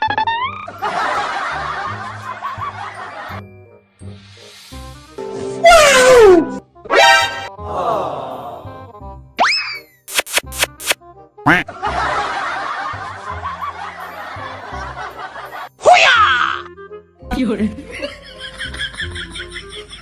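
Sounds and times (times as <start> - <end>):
background music: 0.0 - 20.0
boing-like upward swoop: 6.9 - 7.5.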